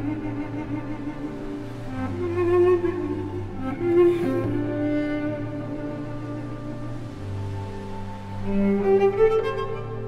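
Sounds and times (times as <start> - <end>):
orchestral strings: 0.0 - 10.0
solo cello: 0.0 - 10.0.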